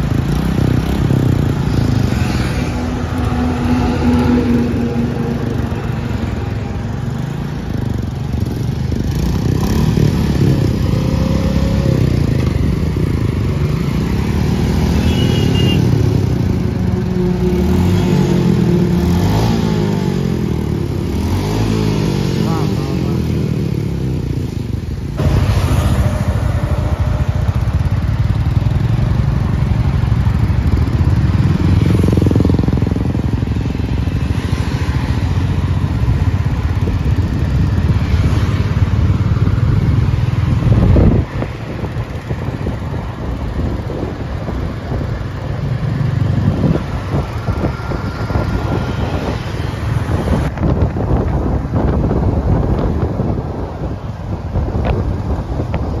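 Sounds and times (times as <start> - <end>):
motorcycle engine while riding: 0.0 - 56.0
motorcycles passing by: 0.0 - 56.0.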